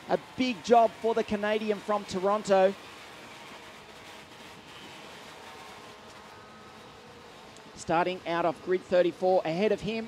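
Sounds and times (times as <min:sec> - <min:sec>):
distant kart engines droning: 0:00.0 - 0:10.0.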